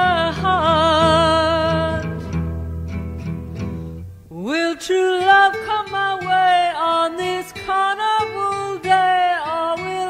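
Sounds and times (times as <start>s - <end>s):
woman singing: 0.0s - 2.4s, 4.3s - 10.0s
acoustic guitar: 0.0s - 10.0s.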